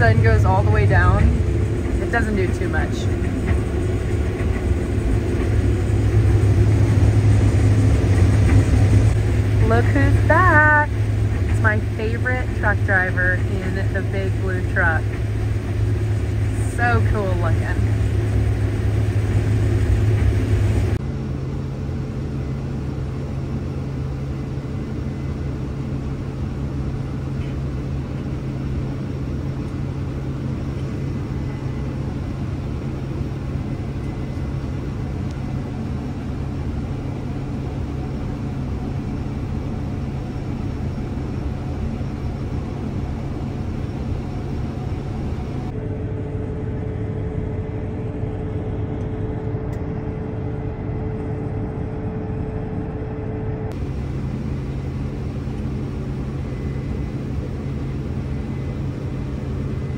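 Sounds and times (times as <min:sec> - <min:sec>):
combine harvester low mechanical drone: 0:00.0 - 0:59.9.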